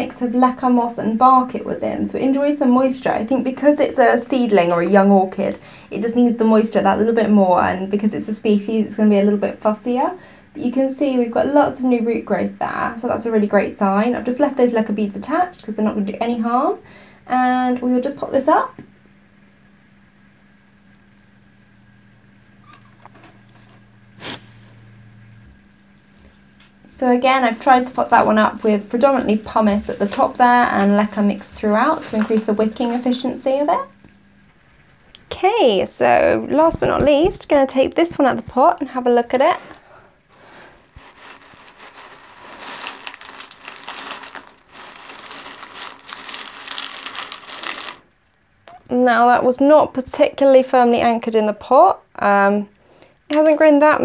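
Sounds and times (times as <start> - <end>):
low steady hum: 0.0 - 54.0
clay pebbles rattling in plastic pot: 27.0 - 33.5, 40.8 - 48.1.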